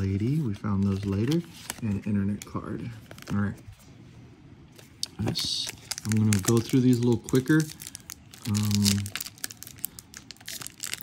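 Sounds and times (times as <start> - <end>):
foil wrapper crinkling as torn open: 5.6 - 11.0.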